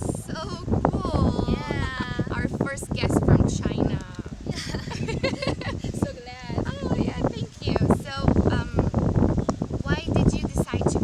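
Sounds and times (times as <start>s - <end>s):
women talking: 0.0s - 9.0s, 9.8s - 11.0s
wind rumbling on microphone: 0.0s - 11.0s.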